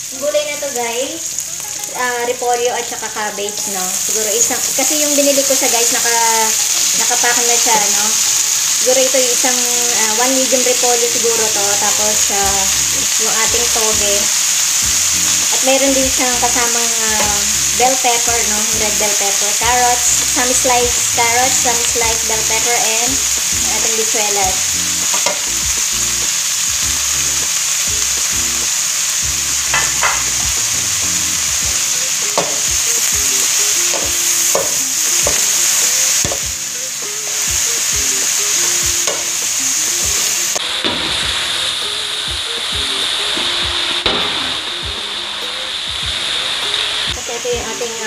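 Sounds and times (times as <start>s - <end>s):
vegetables sizzling in a wok: 0.0s - 48.0s
spatula scraping and knocking wok: 10.2s - 36.5s.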